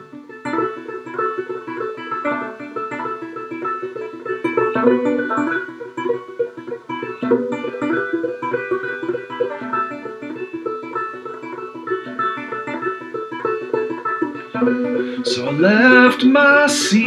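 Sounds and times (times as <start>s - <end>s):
banjo finger-picking: 0.0s - 17.0s.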